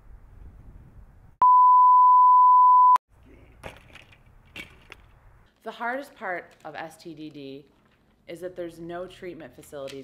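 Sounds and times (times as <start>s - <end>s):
high-pitched electronic bleep: 1.4s - 3.0s.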